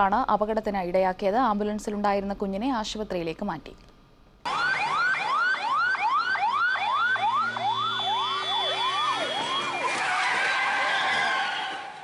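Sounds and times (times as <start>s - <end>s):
ambulance siren yelping: 4.5s - 12.0s.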